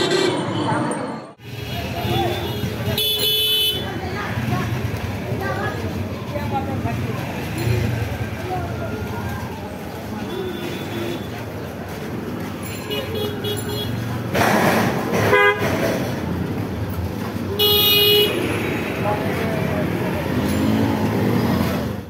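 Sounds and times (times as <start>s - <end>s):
busy street noise: 0.0s - 22.0s
voices: 0.0s - 22.0s
vehicle horn toots: 1.4s - 3.9s, 15.3s - 15.6s, 17.6s - 18.5s.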